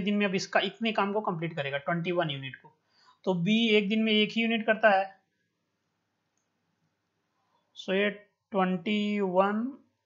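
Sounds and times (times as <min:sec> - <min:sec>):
person speaking: 0:00.0 - 0:10.0
faint clicks: 0:06.3 - 0:06.6.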